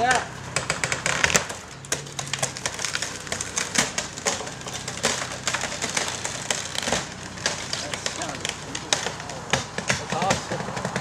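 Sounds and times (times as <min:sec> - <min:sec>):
wooden framing cracking and splintering: 0:00.0 - 0:11.0.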